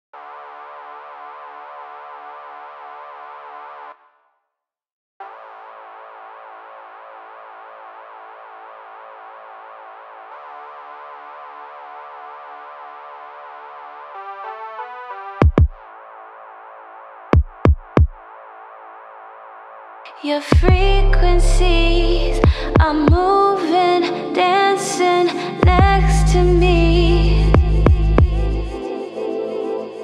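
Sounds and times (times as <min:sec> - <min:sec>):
pulsing synthesizer chord: 0:05.2 - 0:17.3, 0:20.6 - 0:30.0.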